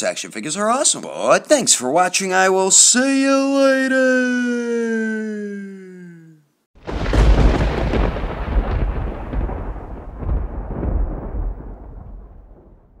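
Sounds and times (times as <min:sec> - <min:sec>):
thunder-like boom: 0:06.8 - 0:13.0.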